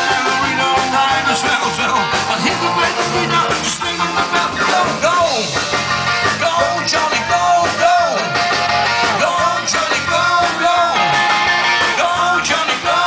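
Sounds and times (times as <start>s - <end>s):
drums: 0.0s - 13.0s
electric guitars: 0.0s - 13.0s
lead melody: 0.1s - 6.2s.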